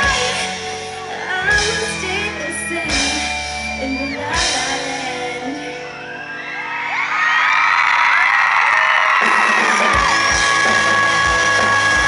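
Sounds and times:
audience screaming and whooping: 0.0s - 12.0s
live rock band: 0.0s - 12.0s
drum beat: 9.2s - 12.0s.

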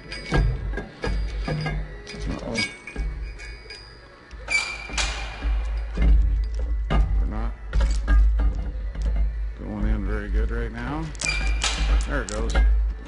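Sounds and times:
loud ringing metal clank: 0.0s - 8.6s, 11.2s - 12.9s
metal clinks and knocks: 0.0s - 9.4s, 10.9s - 13.0s.

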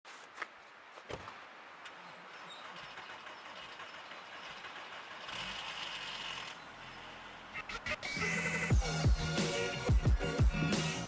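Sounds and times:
car starter cranking: 2.5s - 6.7s.

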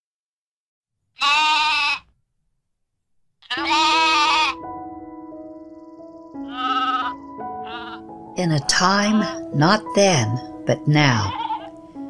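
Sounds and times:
sheep bleating: 1.2s - 2.1s, 3.4s - 4.7s, 6.4s - 8.1s, 11.2s - 11.8s
soft music of long held notes: 3.6s - 12.0s.

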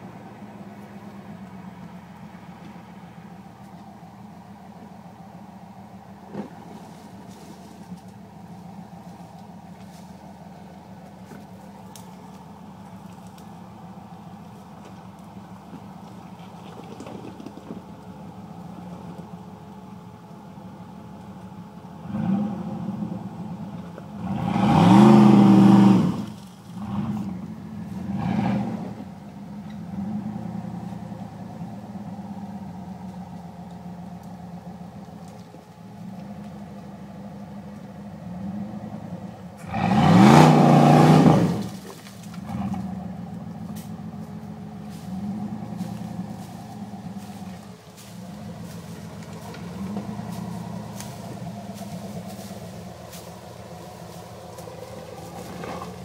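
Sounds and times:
engine revving: 21.9s - 33.1s, 38.0s - 56.0s.

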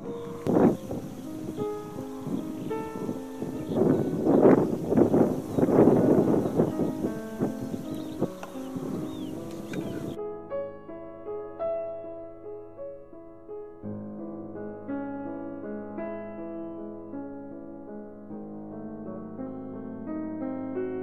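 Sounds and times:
faint high chirps: 0.0s - 10.2s
gusty rushing noise: 0.0s - 10.2s
slow piano music: 0.0s - 21.0s.

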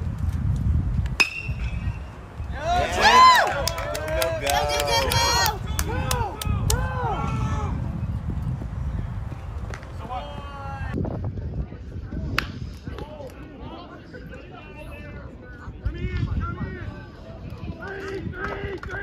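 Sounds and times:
bat cracking a baseball: 1.0s - 1.9s
spectators yelling and cheering: 2.4s - 7.9s
people clapping: 3.0s - 6.8s, 17.8s - 19.0s.

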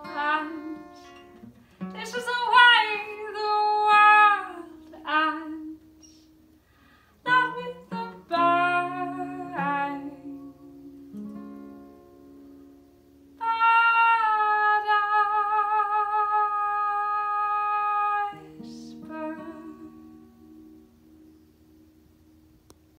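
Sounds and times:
woman singing: 0.0s - 6.4s, 7.2s - 11.2s, 13.4s - 20.6s
acoustic guitar: 0.0s - 22.9s
breath: 6.6s - 7.2s.

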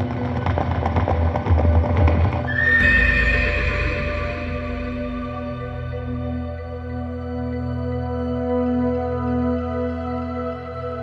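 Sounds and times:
horse hooves clip-clopping: 0.0s - 4.0s
music: 0.0s - 11.0s
horse whinnying: 2.5s - 4.7s.

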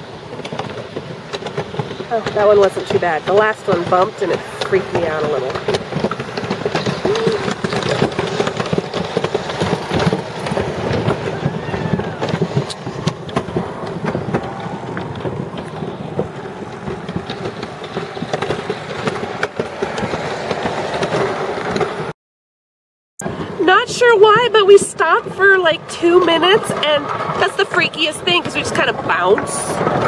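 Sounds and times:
chairlift mechanical rumble: 0.0s - 22.1s, 23.2s - 30.0s.

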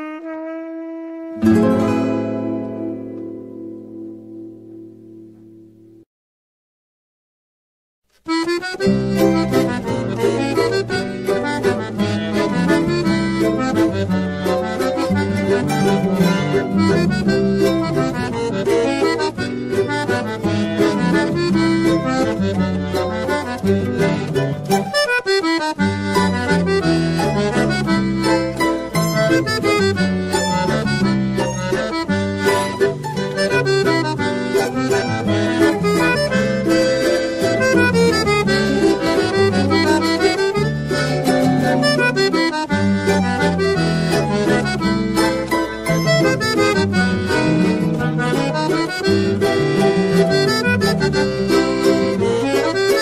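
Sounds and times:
instrumental ensemble melody: 0.0s - 5.6s, 8.3s - 53.0s
guitar accompaniment: 0.0s - 6.0s, 8.3s - 53.0s.

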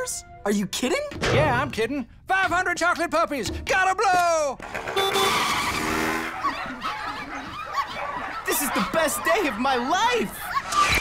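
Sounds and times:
cartoon scooter tire screech: 4.6s - 6.9s.

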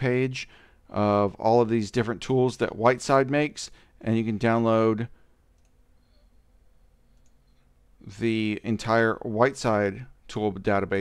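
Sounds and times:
computer mouse clicks: 5.5s - 5.8s, 7.1s - 7.7s.

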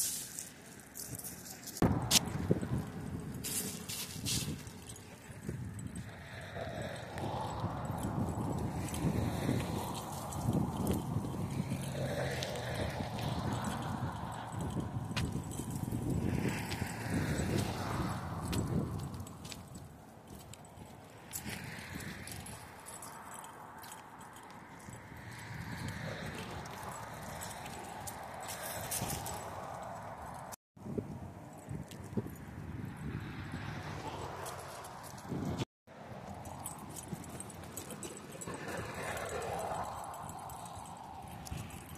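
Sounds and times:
footsteps on paved path: 0.0s - 41.9s.

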